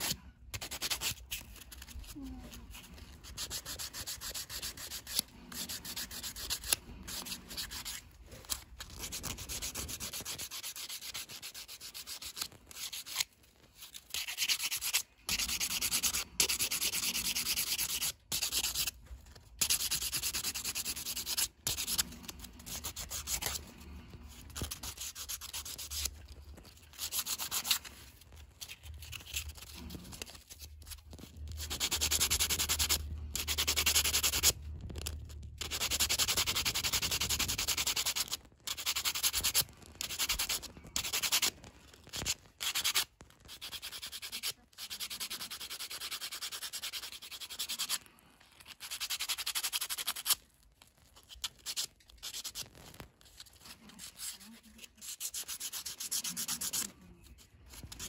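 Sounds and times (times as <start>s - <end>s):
sandpaper scratching ivory: 0.0s - 19.0s, 19.6s - 26.2s, 26.8s - 28.0s, 28.6s - 34.6s, 35.6s - 41.5s, 42.1s - 48.0s, 48.7s - 50.4s, 51.2s - 52.7s, 53.6s - 57.0s, 57.7s - 58.0s.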